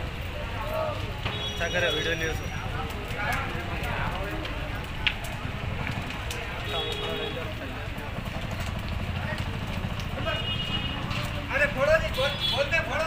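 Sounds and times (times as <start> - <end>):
fire burning with crackles: 0.0 - 13.0
loud fire snap: 0.0 - 13.0.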